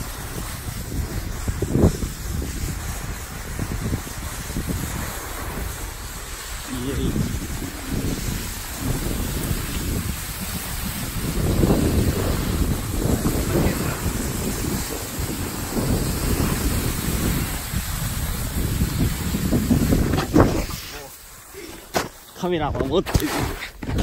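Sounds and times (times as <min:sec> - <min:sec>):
wind buffeting microphone: 0:00.0 - 0:21.9.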